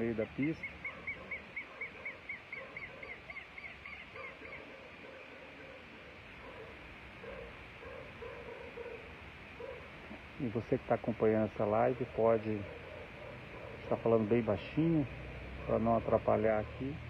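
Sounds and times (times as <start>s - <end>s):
bird sharp alarm calls: 0.3s - 4.9s.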